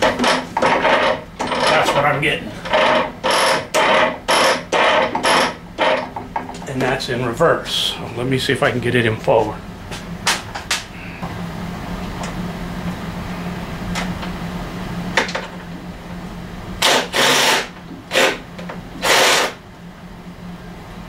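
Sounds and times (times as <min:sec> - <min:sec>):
steady low hum: 0:00.0 - 0:21.0
loud harsh noises: 0:19.0 - 0:19.6.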